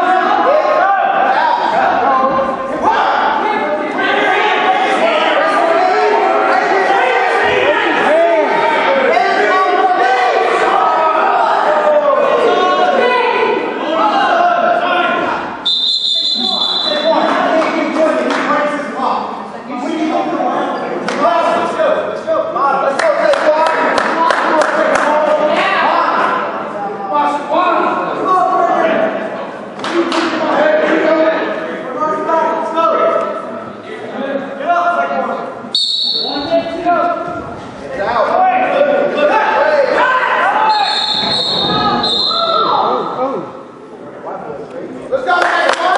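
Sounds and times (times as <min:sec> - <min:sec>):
people shouting: 0:00.0 - 0:17.5, 0:38.5 - 0:43.4
voices echoing in a gym: 0:00.0 - 0:45.9
referee's whistle: 0:15.6 - 0:17.2, 0:35.7 - 0:36.6, 0:40.7 - 0:42.8.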